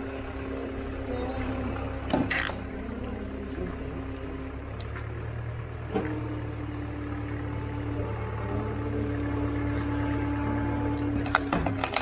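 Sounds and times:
hydraulic log splitter running: 0.0s - 12.0s.

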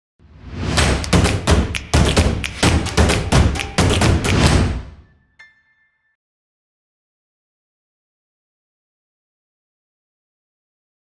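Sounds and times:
heavy percussive hits with booms: 0.7s - 5.0s.

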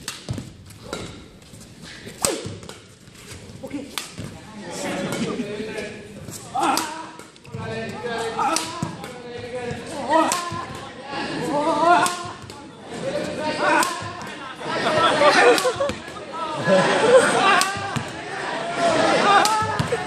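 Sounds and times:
rackets striking shuttlecock: 0.0s - 1.4s, 2.0s - 5.4s, 6.3s - 10.9s, 11.9s - 12.7s, 13.3s - 14.4s, 15.3s - 16.2s, 17.5s - 18.2s, 19.4s - 20.0s
crowd voices in a gym: 0.0s - 20.0s.

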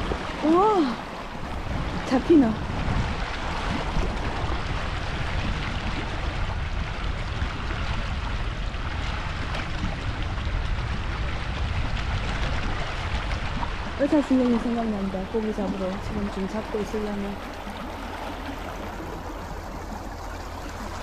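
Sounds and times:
wind rumbling on microphone: 0.0s - 21.0s
fast-flowing river rushing: 11.2s - 21.0s.

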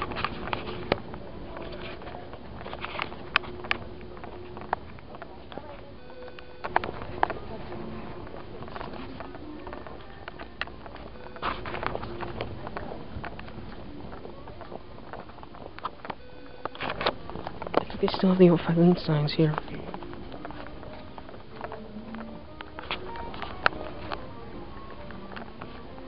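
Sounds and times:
distant voices: 0.0s - 26.0s
faint background music: 0.0s - 26.0s.

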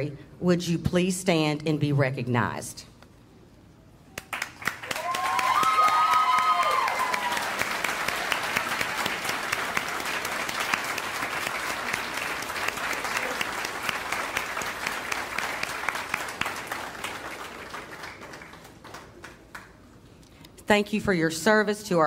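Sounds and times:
audience applauding: 4.2s - 19.8s.

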